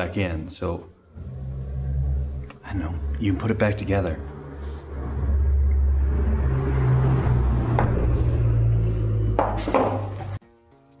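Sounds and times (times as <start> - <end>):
low hum: 0.8 - 10.4.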